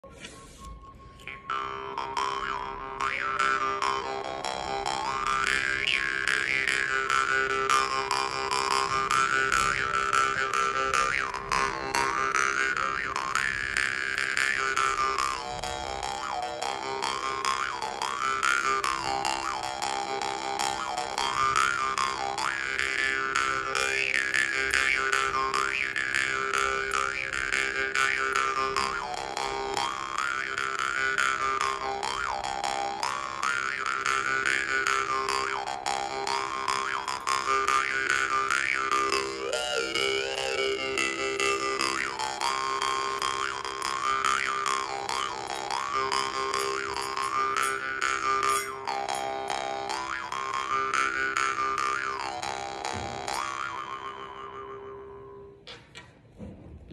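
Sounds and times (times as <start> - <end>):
jaw harp plucks and twangs: 1.1 - 55.9.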